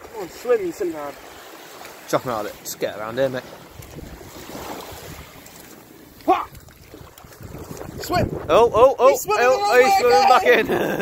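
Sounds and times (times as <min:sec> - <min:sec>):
surf washing over sand: 0:00.0 - 0:11.0
wind on microphone: 0:03.6 - 0:05.5, 0:06.2 - 0:11.0
person exclaiming: 0:06.2 - 0:06.5, 0:09.2 - 0:11.0.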